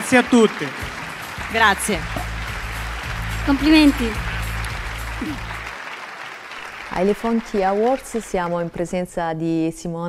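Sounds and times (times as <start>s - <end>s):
audience applauding: 0.0s - 8.8s
background music: 0.0s - 10.0s.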